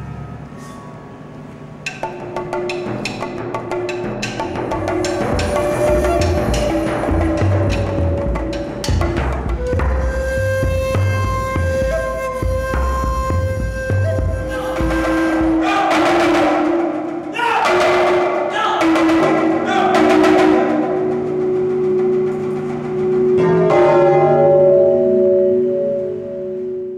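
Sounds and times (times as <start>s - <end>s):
hanging gongs ringing: 1.9s - 9.4s, 19.0s - 26.9s
low drum roll: 2.4s - 26.2s.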